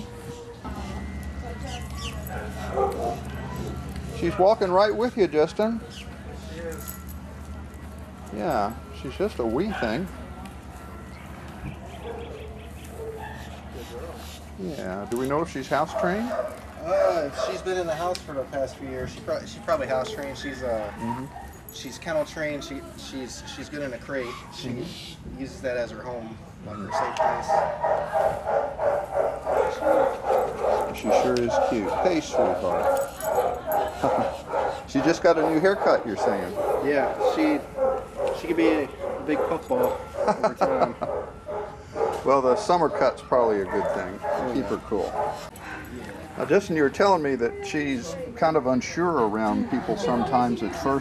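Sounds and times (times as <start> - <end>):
low outdoor rumble: 0.0 - 14.6
small dog yelping: 20.6 - 21.6.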